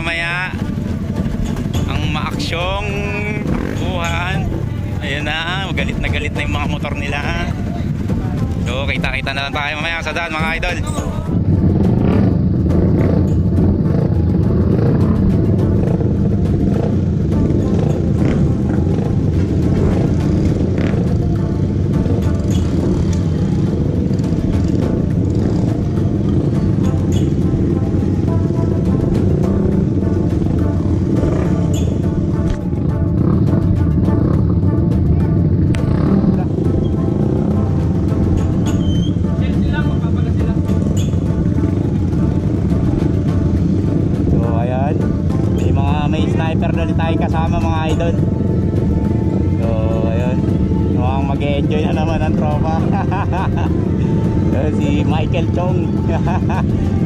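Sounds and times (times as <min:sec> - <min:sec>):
motorcycle engines running: 0:00.0 - 0:57.0
music playing: 0:00.0 - 0:57.0.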